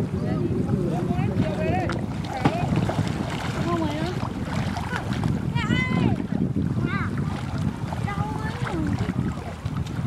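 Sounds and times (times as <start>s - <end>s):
water splashes: 0.0s - 10.0s
wind buffeting microphone: 0.0s - 10.0s.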